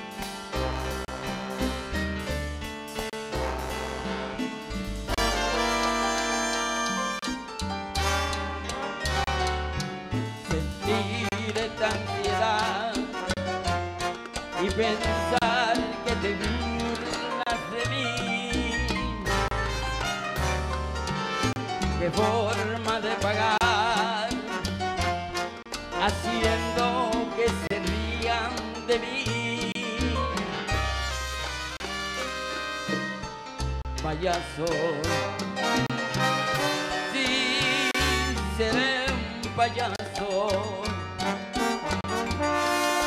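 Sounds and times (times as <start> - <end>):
salsa band playing: 0.0 - 43.0
person singing: 10.5 - 13.3, 14.6 - 19.2, 22.0 - 24.6, 26.0 - 30.4, 34.0 - 35.4, 36.6 - 41.0.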